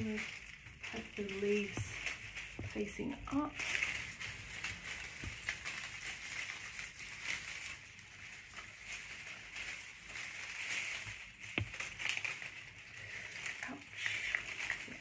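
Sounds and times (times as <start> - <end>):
dried flowers rustling: 0.0 - 15.0.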